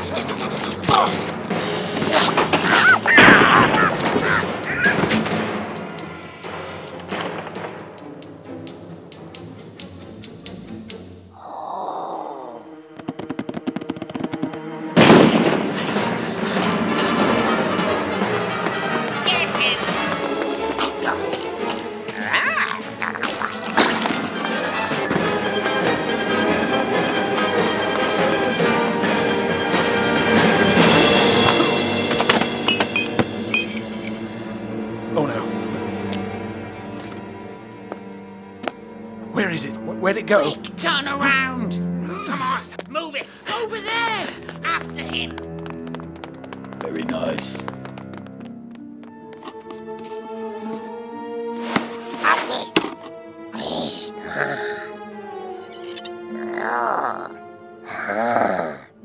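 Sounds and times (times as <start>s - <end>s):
quick run of clicks: 13.0s - 14.6s
high glassy clinks: 32.7s - 34.3s.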